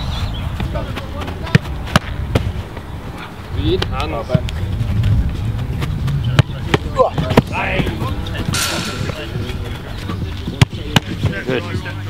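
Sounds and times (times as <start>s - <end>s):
background voices: 7.0s - 12.0s.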